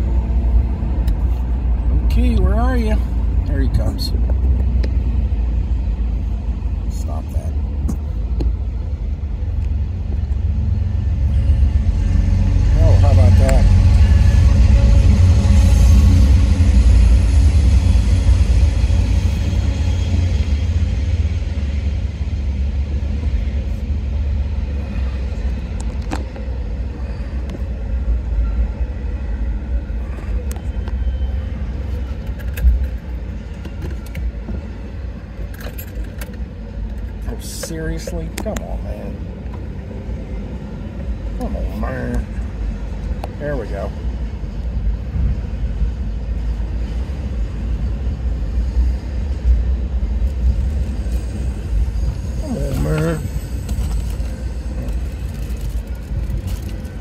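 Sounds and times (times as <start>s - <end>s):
freight train rumbling past: 0.0s - 57.0s.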